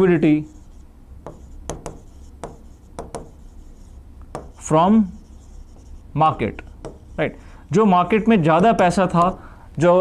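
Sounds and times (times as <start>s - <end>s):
marker pen squeaking on board: 0.4s - 7.4s, 8.5s - 9.4s.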